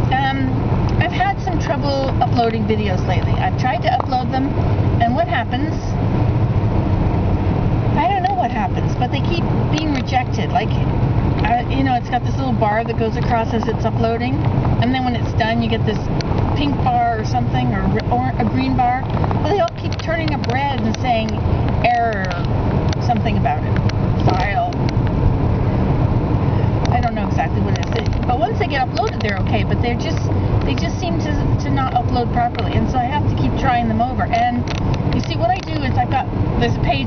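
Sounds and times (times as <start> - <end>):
woman's voice: 0.0 - 6.0, 8.0 - 24.8, 26.9 - 37.0
car road and engine noise: 0.0 - 37.0.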